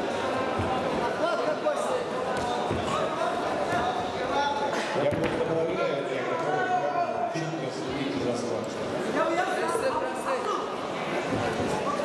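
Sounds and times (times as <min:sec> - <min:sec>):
people calling out in echoing hall: 0:01.0 - 0:05.0, 0:09.2 - 0:12.0.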